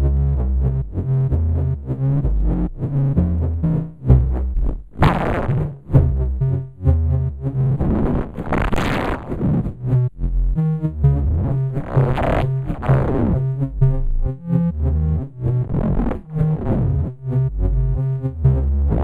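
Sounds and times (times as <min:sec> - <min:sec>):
modular synthesizer stepped sequence: 0:00.0 - 0:19.0.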